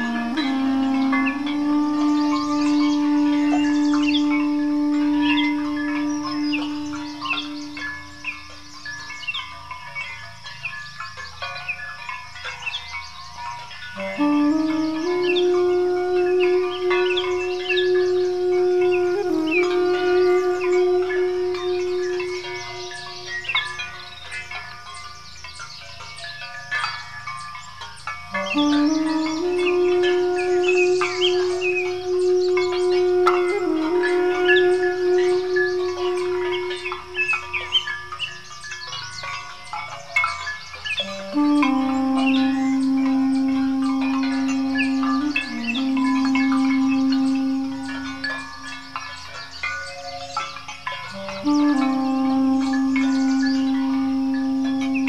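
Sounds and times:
duduk playing long notes: 0:00.0 - 0:08.8, 0:13.9 - 0:24.1, 0:28.3 - 0:38.2, 0:41.0 - 0:48.9, 0:51.1 - 0:55.0
songbirds chirping: 0:00.0 - 0:55.0.

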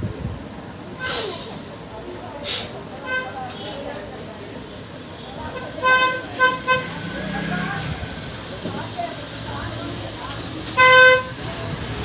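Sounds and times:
vehicle horn honking: 0:05.4 - 0:07.1, 0:10.8 - 0:11.4.

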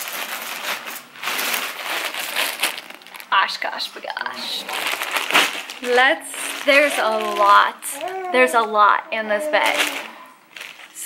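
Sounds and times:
shopping bag rustling: 0:00.0 - 0:11.0.

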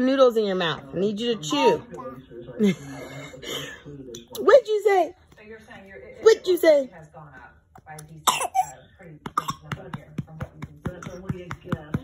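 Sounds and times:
toddler coughing: 0:08.2 - 0:08.8, 0:09.4 - 0:09.8.

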